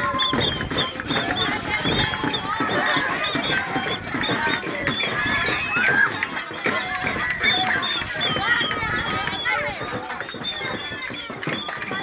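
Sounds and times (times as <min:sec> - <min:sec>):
children shouting and squealing: 0:00.0 - 0:12.0.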